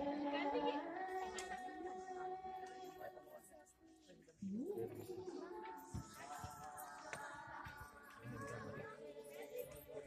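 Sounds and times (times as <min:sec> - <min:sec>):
group singing a hymn: 0:00.0 - 0:03.2.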